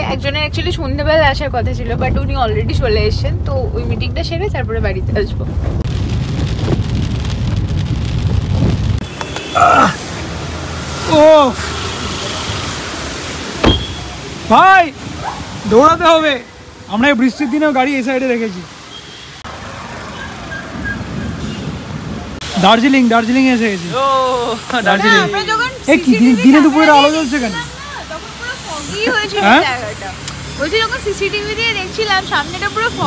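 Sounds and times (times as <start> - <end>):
car driving on wet road: 0.2 - 33.0
rain hitting a car: 0.6 - 20.1.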